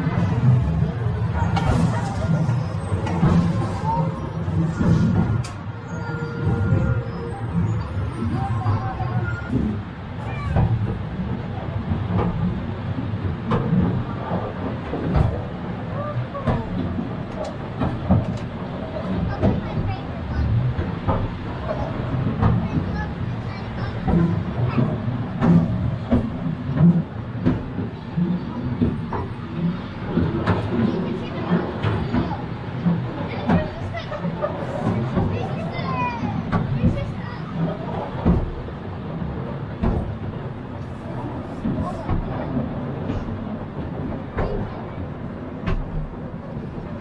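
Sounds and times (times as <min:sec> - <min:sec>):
passengers' voices: 0:00.0 - 0:47.0
railway carriage rumbling and clacking: 0:00.0 - 0:47.0.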